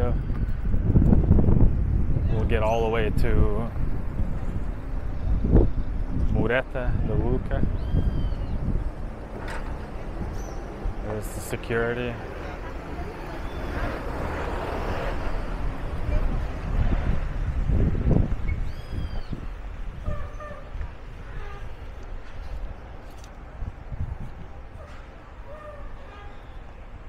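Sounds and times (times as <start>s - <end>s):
faint traffic: 0.0s - 27.0s
wind rumbling on microphone: 0.0s - 27.0s.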